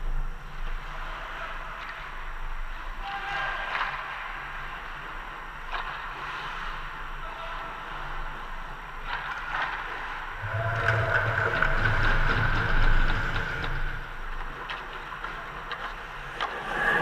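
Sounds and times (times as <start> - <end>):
hockey sticks and puck clicking: 0.4 - 6.9, 8.9 - 17.0
skates scraping ice: 0.4 - 17.0
low hum: 10.3 - 17.0.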